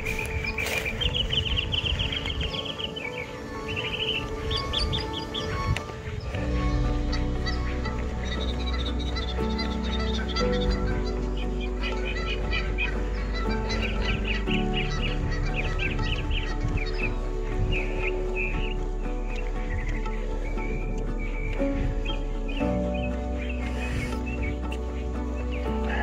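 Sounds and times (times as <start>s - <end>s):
birds chirping: 0.0s - 26.0s
music of long held chords: 0.0s - 26.0s.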